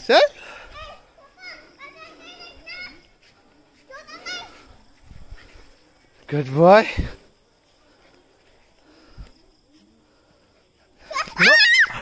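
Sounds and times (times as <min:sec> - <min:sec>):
children's voices calling: 0:00.4 - 0:05.7, 0:10.8 - 0:12.0.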